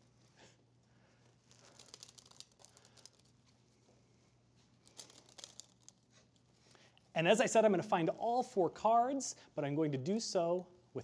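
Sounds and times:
playing cards rustling and ticking: 1.2 - 3.6, 4.8 - 6.4.

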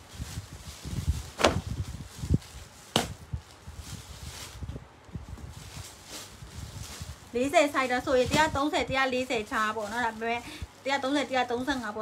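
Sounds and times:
cloth rustling: 0.0 - 12.0
fabric snapping: 1.3 - 1.8, 2.9 - 3.2.

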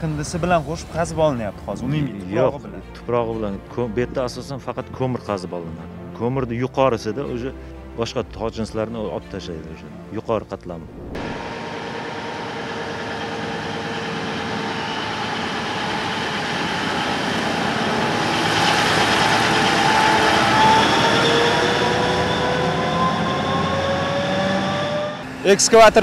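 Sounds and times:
engine whine rising in pitch: 10.7 - 26.0
mining dump truck driving past: 10.7 - 26.0.

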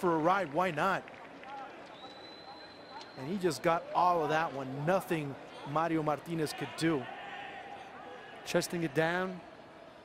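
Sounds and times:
faint stadium crowd: 0.0 - 10.0.

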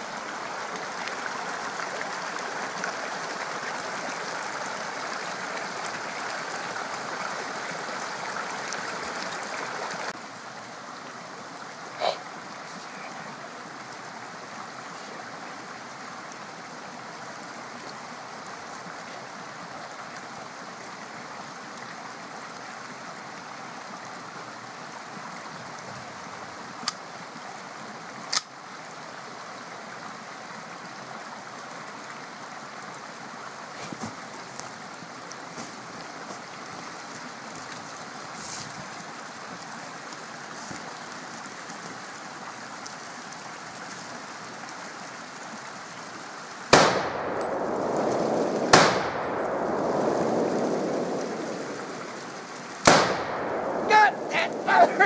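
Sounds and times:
mountain stream rushing: 0.0 - 55.0
rifle shots: 46.8 - 51.5, 52.8 - 55.0
rumble: 47.0 - 53.9.

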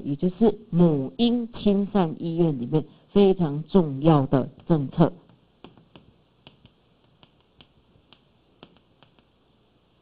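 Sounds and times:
chalk tapping on blackboard: 5.6 - 9.3.

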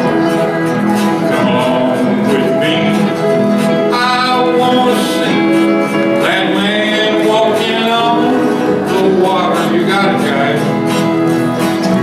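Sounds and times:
steel guitar notes: 0.0 - 12.0
strummed acoustic guitars: 0.0 - 12.0.

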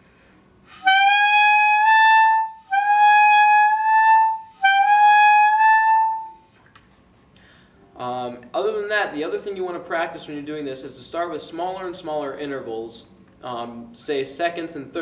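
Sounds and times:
clarinet upward glissando: 0.7 - 6.5.

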